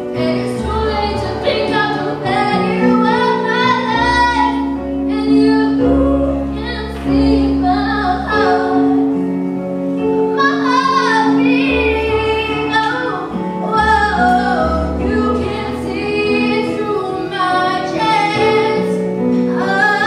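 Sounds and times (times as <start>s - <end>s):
woman singing: 0.0s - 9.2s, 10.3s - 20.0s
low bass: 0.0s - 10.4s
keyboard chords: 0.0s - 20.0s.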